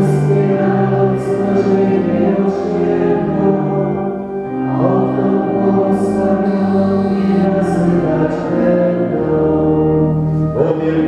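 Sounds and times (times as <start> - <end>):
group singing a hymn: 0.0 - 11.0.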